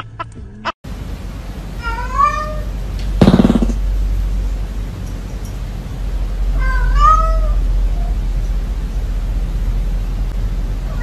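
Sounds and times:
steady low hum: 0.0 - 11.0
cat meowing: 1.8 - 2.7, 6.6 - 8.1.

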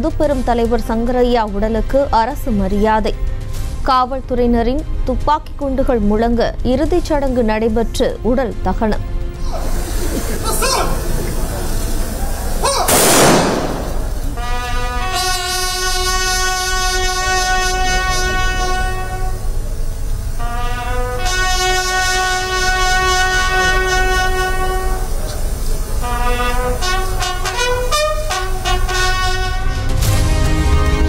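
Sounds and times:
bugle call: 12.6 - 19.5, 20.4 - 25.2, 26.0 - 30.0.

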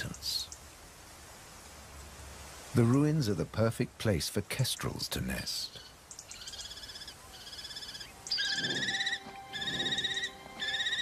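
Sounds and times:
kestrel trilled calls: 5.8 - 11.0.

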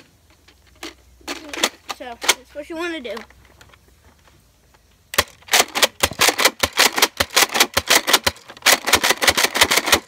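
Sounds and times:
toy dart blaster firing rapidly: 5.2 - 10.0.

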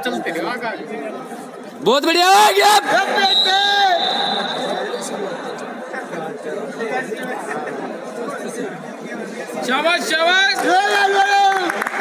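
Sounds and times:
chatter of voices in a hall: 0.0 - 12.0.

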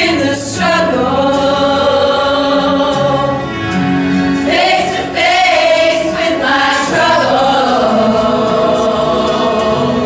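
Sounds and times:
women's choir singing: 0.0 - 3.4, 4.4 - 10.0.

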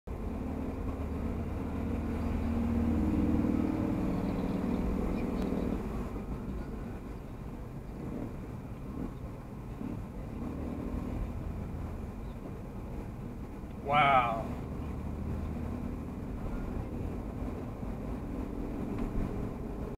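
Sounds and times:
car engine and road noise: 0.1 - 19.9.

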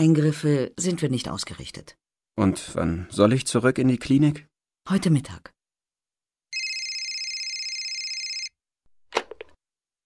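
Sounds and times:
telephone ringing: 6.5 - 8.6.

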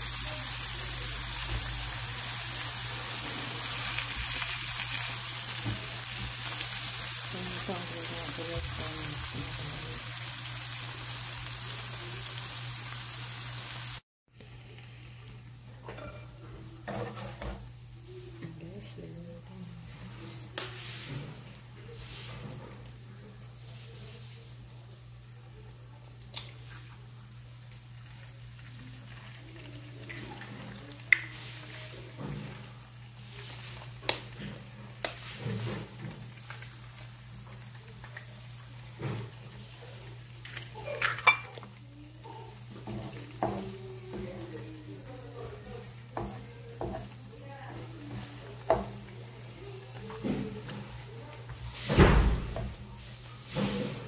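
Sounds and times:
food sizzling in oil: 0.0 - 18.9, 20.6 - 23.0, 26.2 - 54.0.

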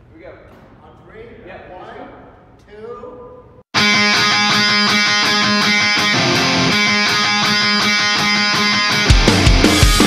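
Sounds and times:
distorted electric guitar riff: 3.8 - 10.0.

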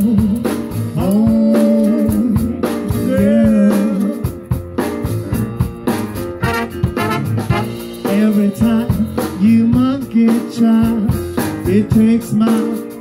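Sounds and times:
live blues band playing: 0.0 - 13.0
drum hits: 4.6 - 8.3
horn section: 6.4 - 8.0.

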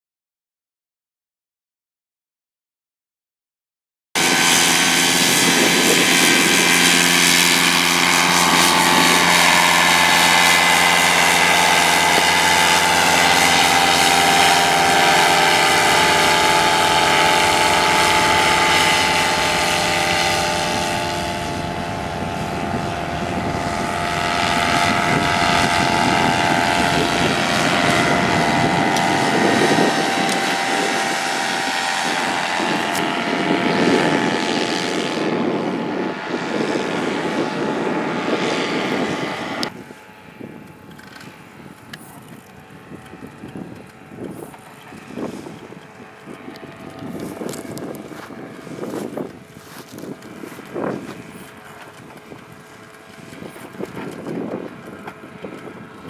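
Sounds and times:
rushing air noise: 4.2 - 40.6
paramotor engine buzzing: 4.2 - 56.0.

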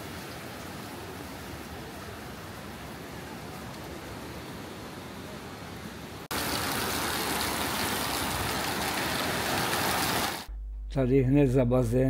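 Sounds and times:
running water rushing: 0.0 - 10.5.

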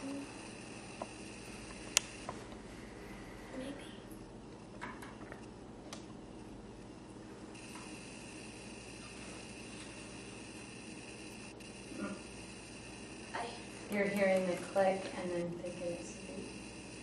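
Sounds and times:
faint steady high hum: 0.0 - 17.0.

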